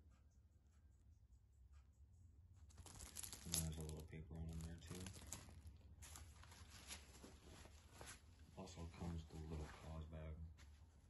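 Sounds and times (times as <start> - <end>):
paper rustling and crinkling: 2.7 - 9.9.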